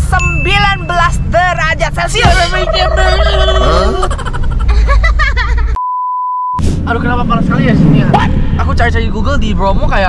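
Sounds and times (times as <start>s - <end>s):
voices: 0.1s - 4.3s
high-pitched bleep: 5.8s - 6.6s.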